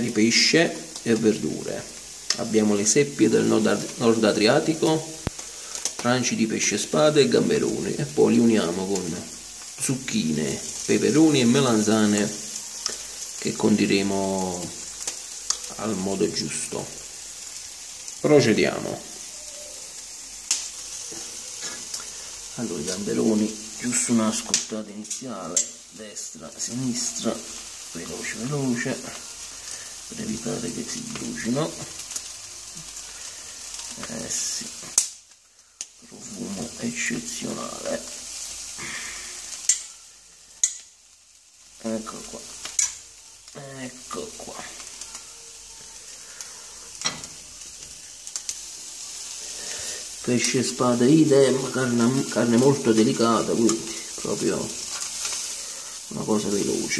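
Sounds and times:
food sizzling on a grill: 0.0 - 56.9
sharp pops: 20.4 - 22.1.

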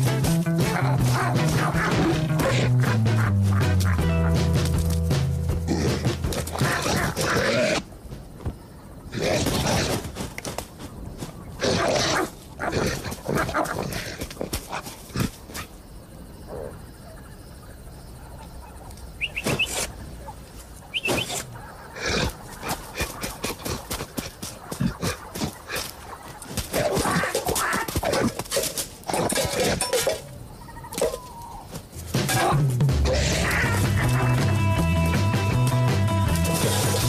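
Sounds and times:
cartoon lion growls and grunts: 5.6 - 7.9, 9.1 - 10.1, 32.2 - 34.4
high bird chirps: 19.2 - 19.9, 20.8 - 21.4.

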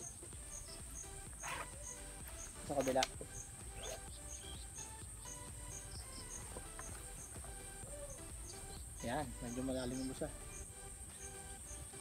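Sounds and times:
faint background music: 0.0 - 12.0
insect chirps: 0.0 - 12.0
insects buzzing: 0.0 - 12.0.

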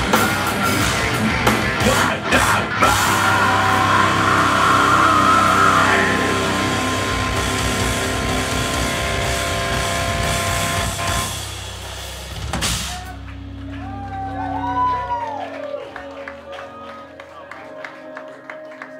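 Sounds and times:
heavy metal band playing live: 0.0 - 15.3.

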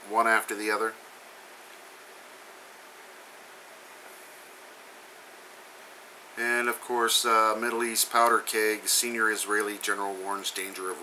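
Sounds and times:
faint microphone hiss: 0.0 - 11.0.

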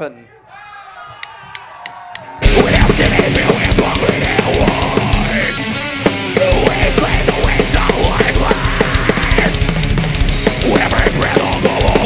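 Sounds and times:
distorted guitars: 2.4 - 12.0
rapid driving drums: 2.4 - 12.0.

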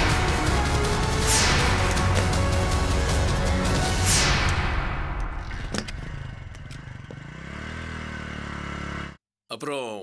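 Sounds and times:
motorcycle engine running: 5.5 - 9.2.

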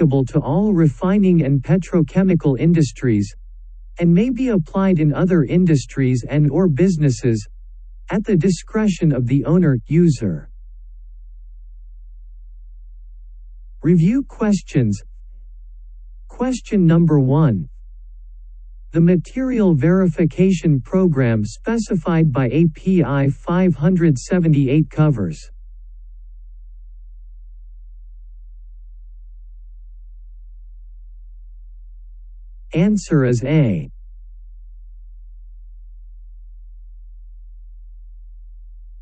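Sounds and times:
person speaking: 0.0 - 3.4, 4.0 - 7.5, 8.1 - 10.5, 13.8 - 15.1, 16.3 - 17.7, 18.9 - 25.5, 32.7 - 33.9
steady low hum: 0.0 - 39.0.

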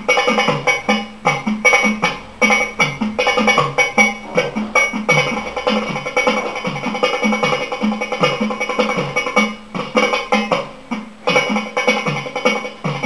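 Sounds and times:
belly dance percussion music: 0.0 - 13.0.

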